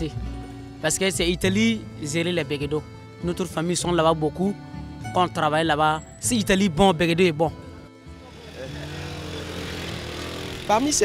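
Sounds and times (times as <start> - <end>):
light street hubbub: 7.7 - 11.0
small motorcycle engine running: 8.3 - 11.0.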